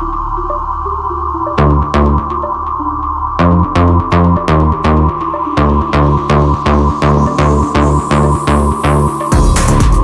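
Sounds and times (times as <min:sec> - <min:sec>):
sustained synth tone: 0:00.0 - 0:09.4
pulsing bassline: 0:00.0 - 0:10.0
kick drum: 0:09.3 - 0:10.0.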